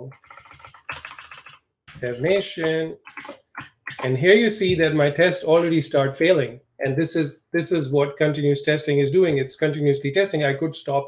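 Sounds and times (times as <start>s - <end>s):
fast typing on keyboard: 0.0s - 1.6s, 3.0s - 4.1s.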